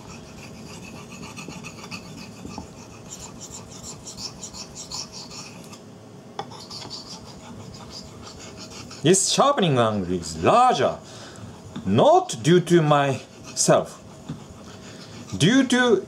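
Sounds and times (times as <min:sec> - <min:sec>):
knife blade scraping on whetstone: 0:00.0 - 0:05.8, 0:06.4 - 0:09.2.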